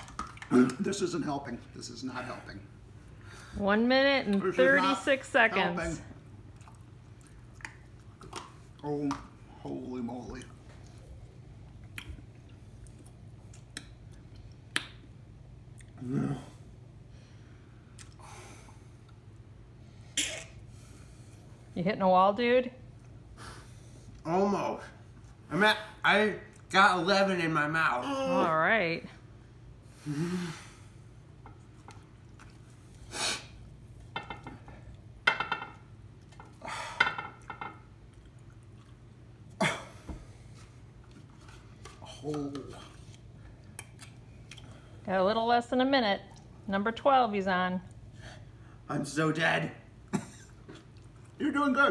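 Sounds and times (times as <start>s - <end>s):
low steady hum: 0.0s - 51.9s
faint chewing: 6.5s - 9.3s, 10.2s - 14.9s, 17.9s - 18.2s, 31.4s - 33.0s, 38.0s - 39.6s, 40.4s - 45.0s, 50.4s - 51.4s
person grunting: 16.0s - 16.6s.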